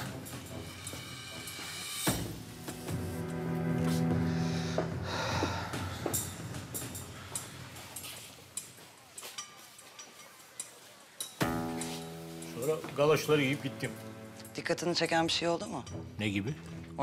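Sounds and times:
held music chord: 2.5s - 6.7s, 11.4s - 17.0s.

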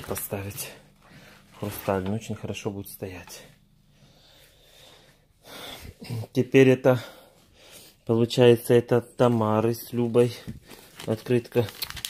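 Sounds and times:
man breathing close to microphone: 3.8s - 6.1s, 7.0s - 8.1s.

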